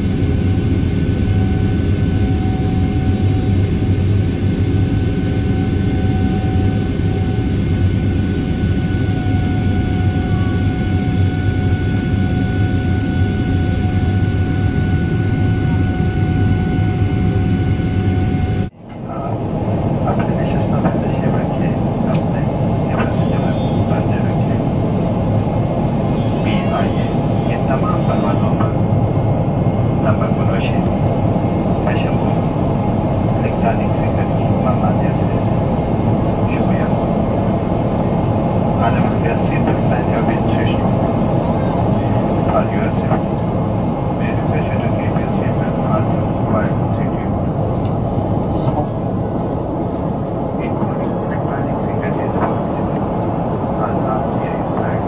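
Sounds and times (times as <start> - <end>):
jet engines roaring: 0.0 - 55.0
steady whining tones: 0.0 - 55.0
faint voices: 20.0 - 24.7, 26.1 - 28.9, 50.5 - 55.0.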